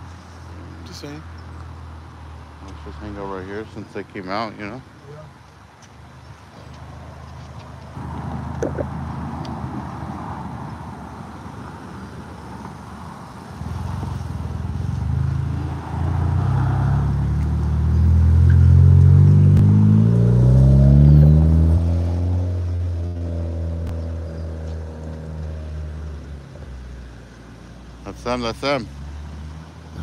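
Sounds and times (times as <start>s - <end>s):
car engine revving past: 13.6s - 26.1s.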